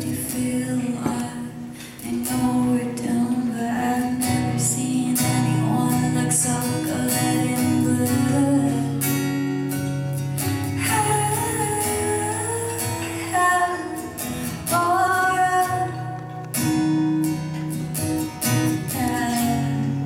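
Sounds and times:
woman singing into microphone: 0.0 - 9.2, 10.7 - 16.7, 18.8 - 20.0
acoustic guitar strumming: 0.0 - 20.0.

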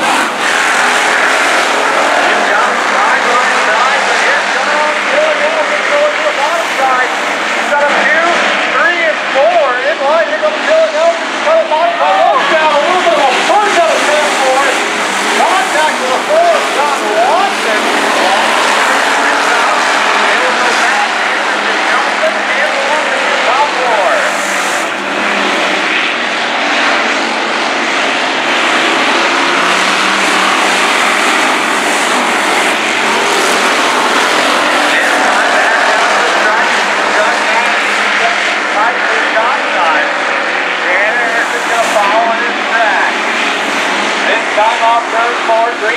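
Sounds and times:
race car engines accelerating: 0.0 - 45.9.

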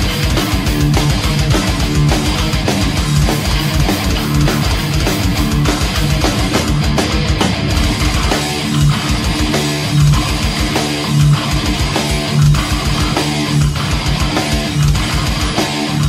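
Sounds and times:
distorted electric guitar riff: 0.0 - 16.0
heavy metal band playing: 0.0 - 16.0.

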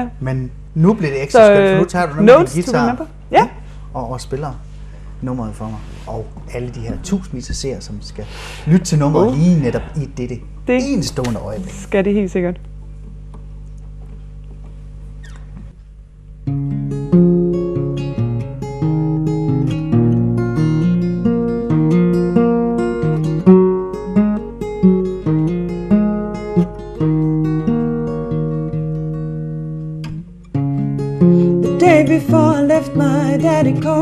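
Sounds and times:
low steady hum: 0.0 - 34.0
fingerstyle acoustic guitar: 16.4 - 34.0.

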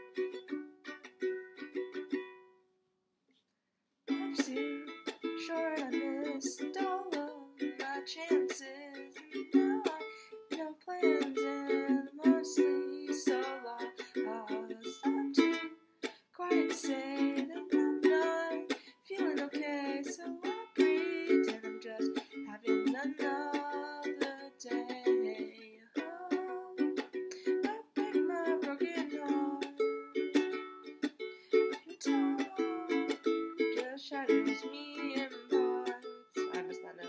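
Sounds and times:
ukulele strummed chords: 0.0 - 2.5, 4.1 - 37.0
woman singing: 4.1 - 15.6, 16.4 - 29.9, 31.7 - 37.0.

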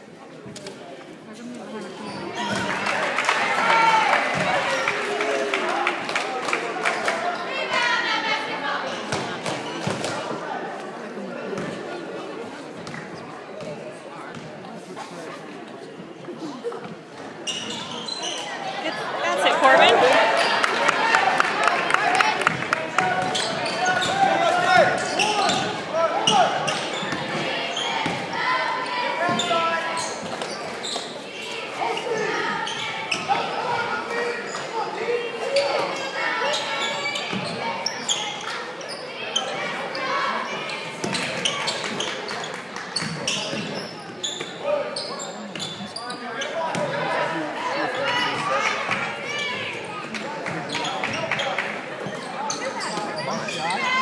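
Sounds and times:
people shouting in a hall: 2.4 - 9.1, 18.0 - 30.2, 52.3 - 54.0.

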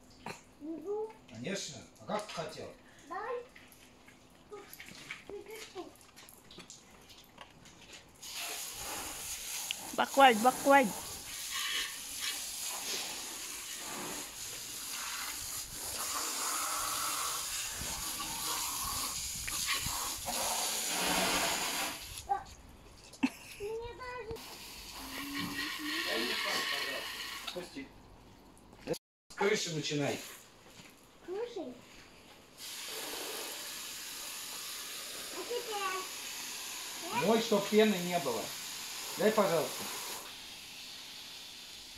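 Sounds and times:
water hissing from hose nozzle: 8.2 - 22.4, 23.6 - 27.8, 32.6 - 41.9.

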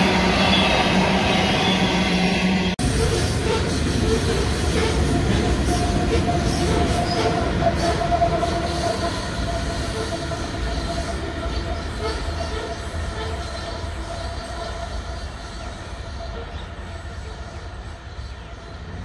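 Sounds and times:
train wagons rumbling on rails: 0.0 - 19.0.

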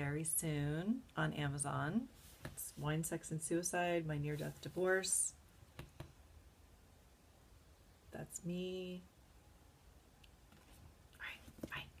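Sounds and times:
woman whispering: 11.2 - 12.0.

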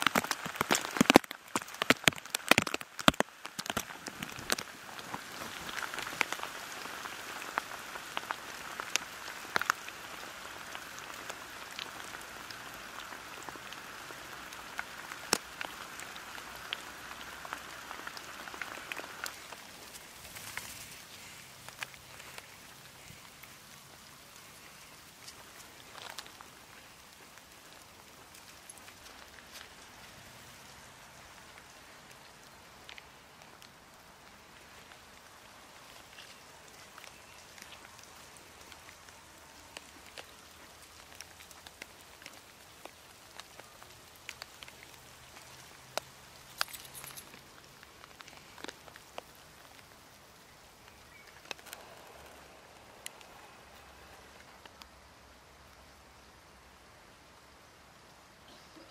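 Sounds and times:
faint outdoor hiss: 0.0 - 58.9.

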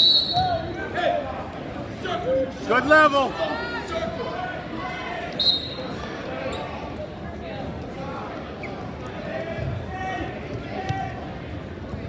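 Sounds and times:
referee's whistle blast: 0.0 - 0.6, 5.4 - 5.9
crowd chatter: 0.0 - 12.0.

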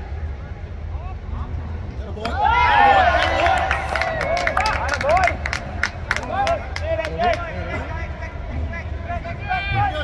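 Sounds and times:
steady low hum: 0.0 - 10.0
people shouting and cheering: 2.2 - 7.8, 9.1 - 10.0
sharp hand claps: 3.5 - 7.4.

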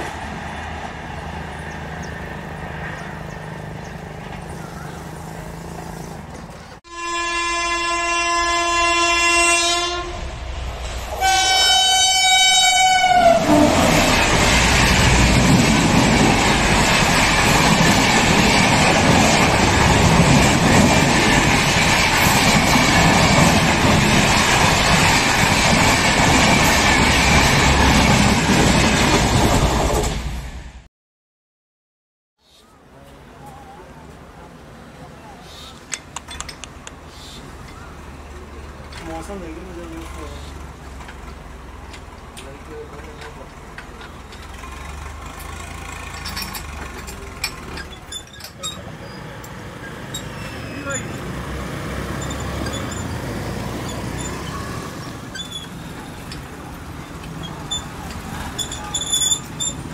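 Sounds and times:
train rumble: 0.0 - 30.9, 33.1 - 59.9
train wheel and rail noise: 0.0 - 30.9, 32.6 - 59.9
locomotive horn blasts: 6.8 - 10.3, 11.2 - 14.1.

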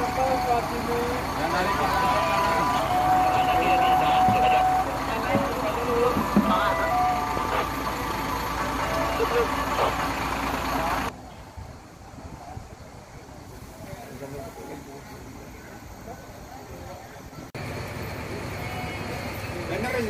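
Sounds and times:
bus engines rumbling: 0.0 - 20.0
people's voices: 0.0 - 20.0
quiet outdoor background: 0.0 - 20.0.

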